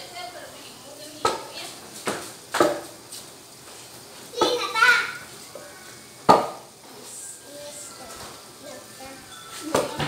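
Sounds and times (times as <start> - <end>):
child's voice: 4.3 - 6.0, 6.8 - 10.0.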